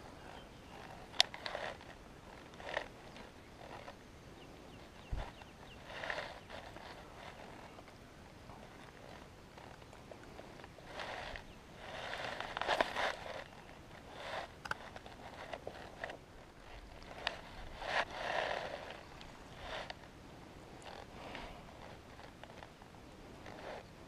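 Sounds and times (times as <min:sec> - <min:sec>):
lure dragged through grass: 0:00.0 - 0:24.0
fishing reel cranking: 0:00.8 - 0:04.0, 0:10.8 - 0:20.1.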